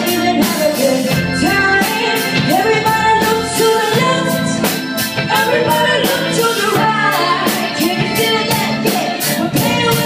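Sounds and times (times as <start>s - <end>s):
electric guitar: 0.0s - 10.0s
steady drum beat: 0.0s - 10.0s
women singing: 0.0s - 10.0s.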